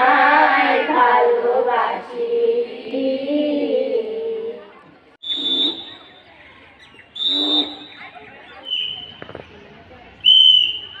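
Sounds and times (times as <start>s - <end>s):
high-pitched whistle blasts: 5.2s - 6.4s, 7.1s - 9.3s, 10.2s - 11.0s.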